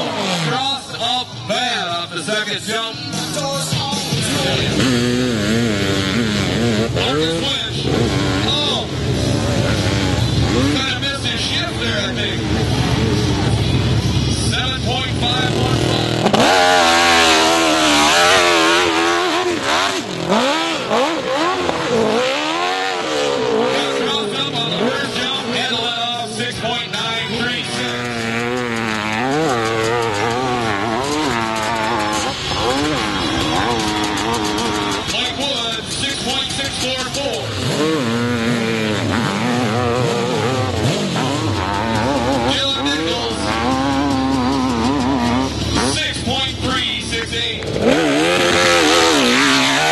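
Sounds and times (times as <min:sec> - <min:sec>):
dirt bike engines revving: 0:00.0 - 0:49.9.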